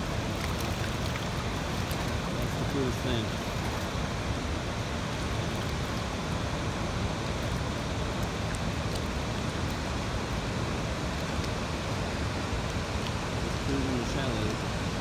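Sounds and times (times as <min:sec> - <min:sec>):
river rushing over rocks: 0:00.0 - 0:15.0.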